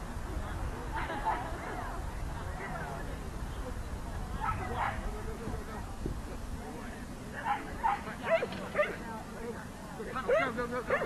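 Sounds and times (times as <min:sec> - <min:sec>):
dog barking: 0:07.5 - 0:09.0, 0:10.3 - 0:11.0.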